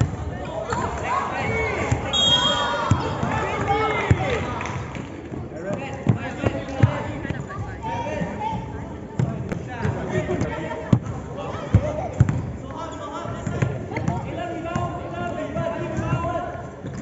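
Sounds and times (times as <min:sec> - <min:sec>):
basketball bouncing on court: 0:01.8 - 0:04.4, 0:05.7 - 0:07.8, 0:09.2 - 0:14.9.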